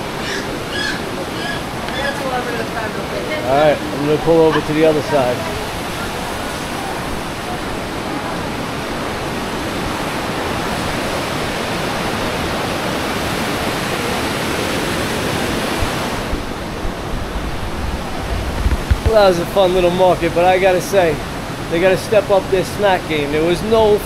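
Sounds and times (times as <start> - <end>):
river rushing over boulders: 0.0 - 24.0.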